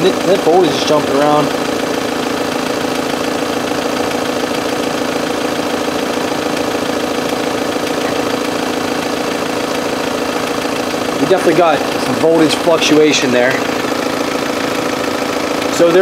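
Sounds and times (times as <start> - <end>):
steady mechanical hum: 0.0 - 16.0.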